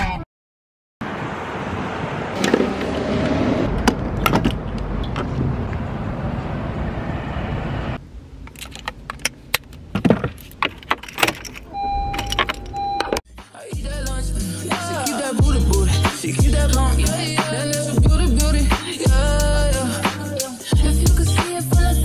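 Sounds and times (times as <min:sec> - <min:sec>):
short beeps: 0:11.7 - 0:13.2.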